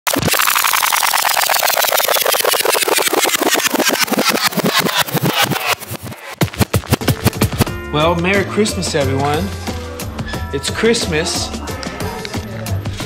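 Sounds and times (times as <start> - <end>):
rapid clicks slowing down: 0.1 - 7.7.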